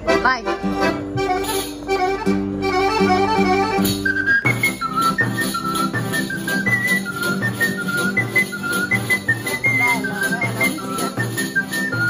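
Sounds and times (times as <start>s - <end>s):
accordion chords: 0.0s - 12.0s
bouncing bass: 0.0s - 12.0s
high flute melody: 2.6s - 12.0s.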